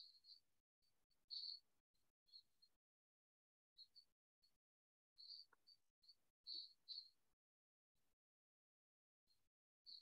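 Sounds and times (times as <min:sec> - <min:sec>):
cricket chirps: 0:01.3 - 0:01.7, 0:05.2 - 0:07.2.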